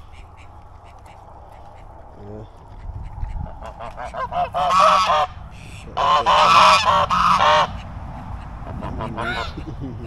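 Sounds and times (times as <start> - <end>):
geese honking: 0.0 - 9.8.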